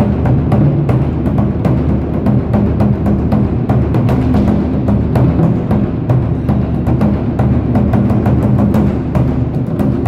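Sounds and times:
drum ensemble fast rhythm: 0.0s - 10.0s.

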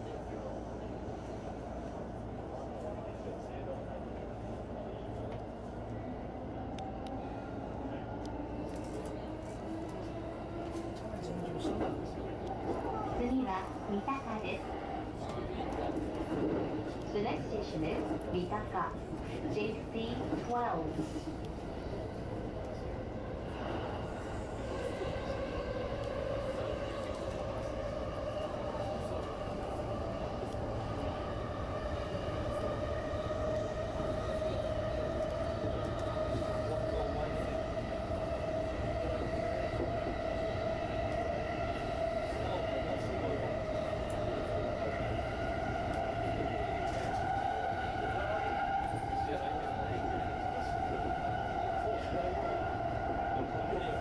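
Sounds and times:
train wheels rumbling on track: 0.0s - 54.0s.

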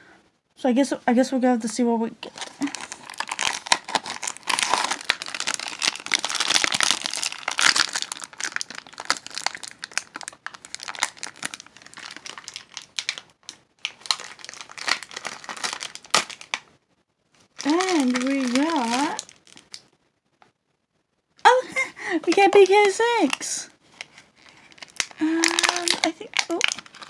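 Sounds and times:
plastic wrapper crumpling and tearing: 2.2s - 16.7s, 17.4s - 19.9s, 22.3s - 27.0s.

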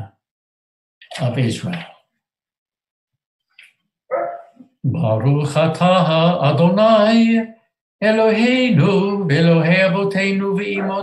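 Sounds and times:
dog barking: 4.1s - 4.7s, 10.7s - 11.0s.

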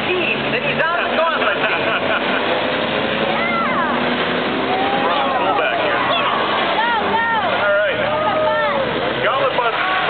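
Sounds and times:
racing car engines: 0.0s - 10.0s
spectators calling out: 3.2s - 10.0s.

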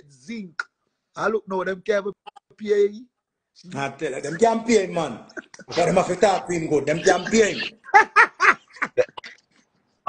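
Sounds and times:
man laughing: 5.4s - 9.3s.

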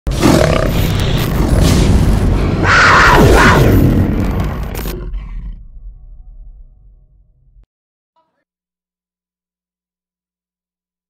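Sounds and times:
low rumble: 0.9s - 7.6s.

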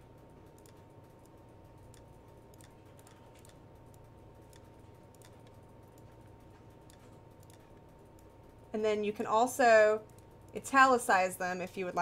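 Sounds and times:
low steady hum: 0.0s - 12.0s
computer mouse and keyboard clicks: 0.5s - 8.4s, 10.0s - 10.6s.

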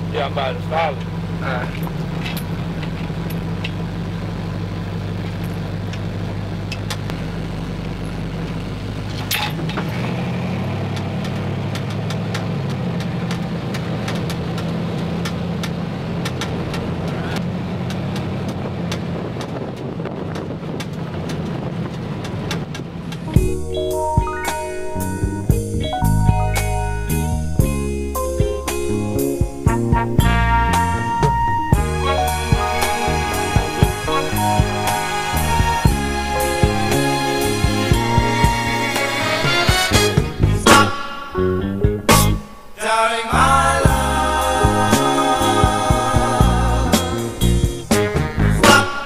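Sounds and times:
car engine running: 0.0s - 42.4s, 43.4s - 48.9s.

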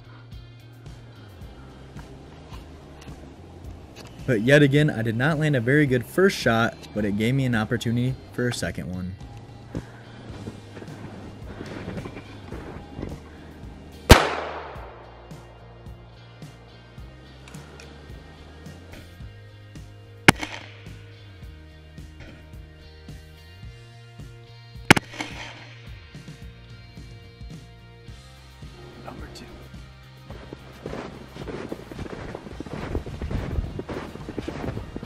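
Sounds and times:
background music: 0.0s - 35.0s
shotgun shots: 14.1s - 15.3s, 20.3s - 21.0s, 24.9s - 25.8s.

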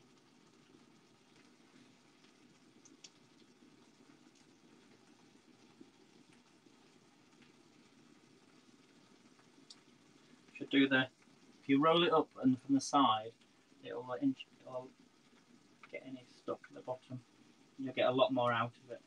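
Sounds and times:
sauce simmering in a pan: 0.0s - 19.0s
small ticks: 0.1s - 11.6s.

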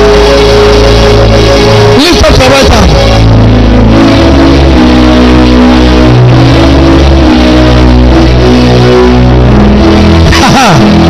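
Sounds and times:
live church band music: 0.0s - 11.0s.

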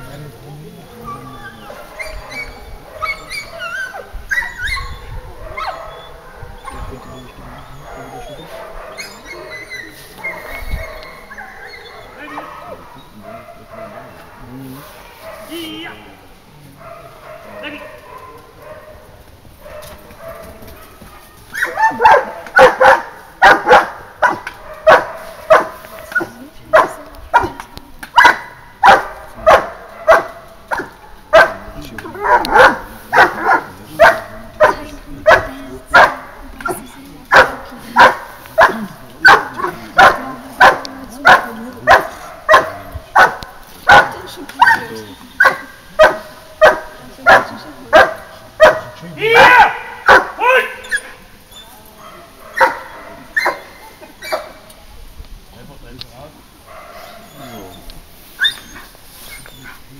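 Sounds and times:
dog barking: 1.6s - 16.0s, 16.8s - 51.3s, 52.0s - 54.6s, 56.6s - 57.7s.

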